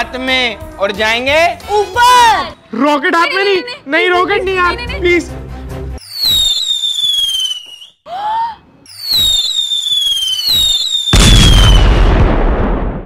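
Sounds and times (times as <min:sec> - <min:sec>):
firework rockets whistling: 0:06.0 - 0:08.0, 0:08.8 - 0:12.0
firework bang with crackling: 0:09.2 - 0:13.0.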